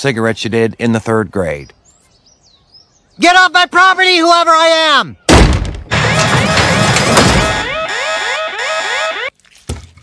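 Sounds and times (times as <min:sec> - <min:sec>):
electronic alarm whooping: 0:05.9 - 0:09.3.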